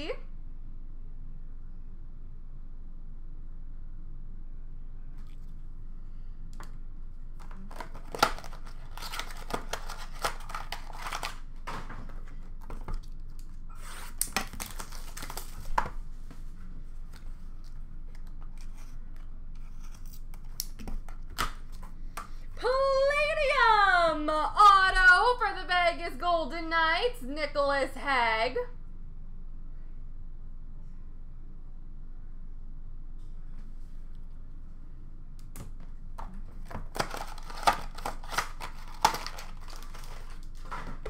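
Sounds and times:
card packaging tearing and crinkling: 7.4 - 16.0, 36.6 - 41.0
person speaking: 22.6 - 28.7.

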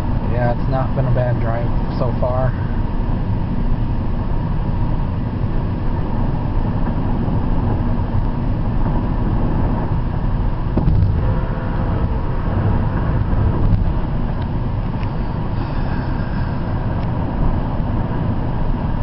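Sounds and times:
car cabin road noise: 0.0 - 19.0.

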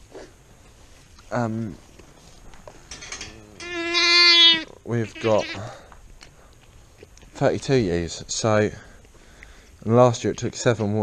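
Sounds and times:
lamb bleating: 3.5 - 5.8.

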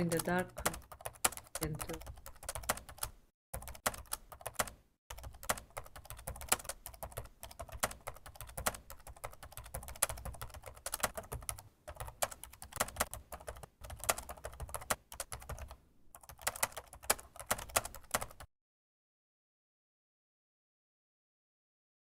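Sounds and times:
typing on a keyboard: 0.0 - 18.5.

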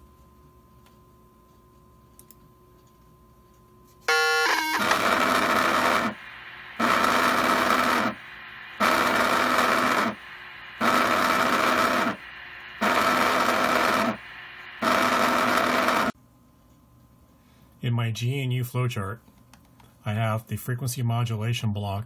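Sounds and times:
pager beep: 4.1 - 4.9
pager buzzing: 4.1 - 16.2.

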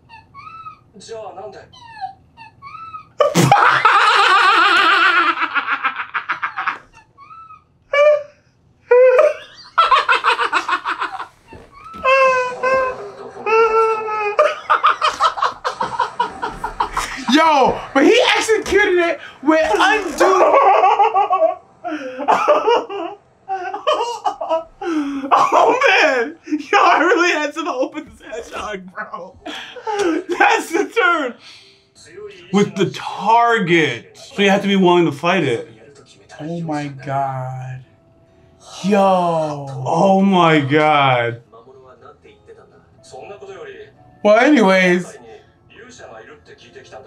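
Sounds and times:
men laughing hard: 3.2 - 7.1, 8.9 - 27.0, 29.4 - 30.6.

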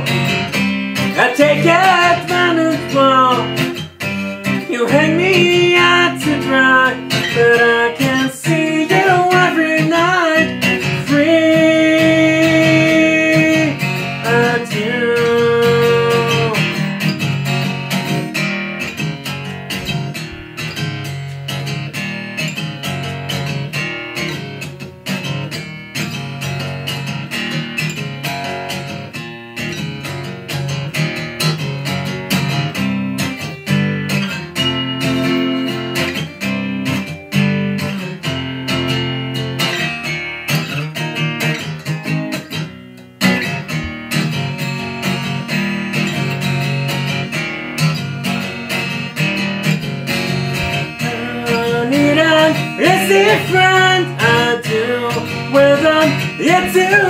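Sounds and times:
acoustic guitar strummed and picked: 0.0 - 57.0.

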